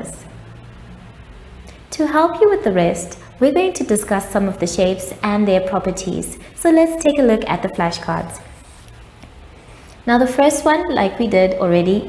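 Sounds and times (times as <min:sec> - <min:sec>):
woman speaking: 0:00.0 - 0:00.3, 0:01.9 - 0:08.6, 0:10.0 - 0:12.0
faint low hum: 0:00.0 - 0:12.0.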